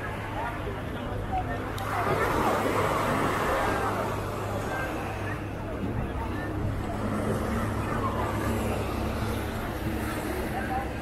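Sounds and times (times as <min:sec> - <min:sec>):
motorboat engine hum: 0:00.0 - 0:11.0
people chattering: 0:00.0 - 0:11.0.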